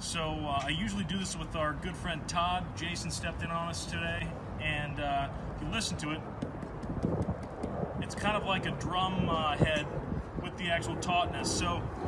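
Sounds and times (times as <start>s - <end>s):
hand tapping on webbing seat: 6.3s - 7.8s.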